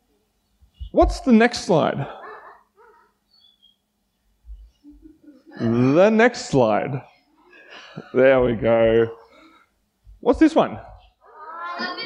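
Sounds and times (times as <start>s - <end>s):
man speaking in reverberant church: 0.9s - 2.2s, 5.7s - 7.1s, 10.2s - 11.0s.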